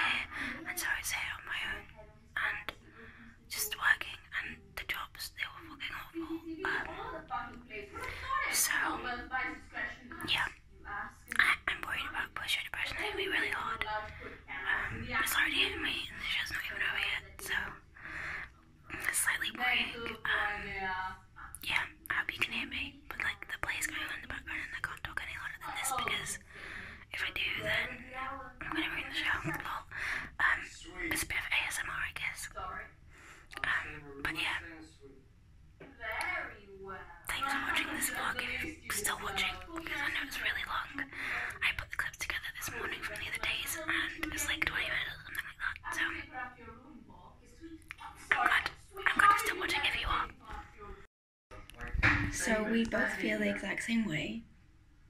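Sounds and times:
woman whispering: 0.0 - 34.9, 36.0 - 51.0, 52.4 - 54.5.

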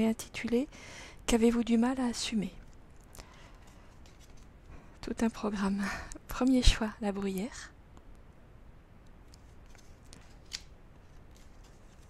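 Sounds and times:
cards sliding and tapping: 9.3 - 12.0
card snap: 10.2 - 10.7.

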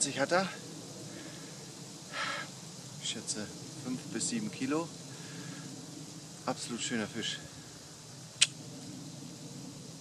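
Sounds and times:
faint steady hiss: 0.0 - 10.0
man breathing: 1.0 - 2.6, 5.1 - 5.8.

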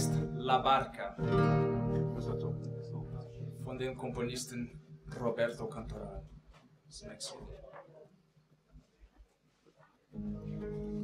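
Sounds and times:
acoustic guitar chord strummed: 0.0 - 6.0, 10.2 - 11.0.

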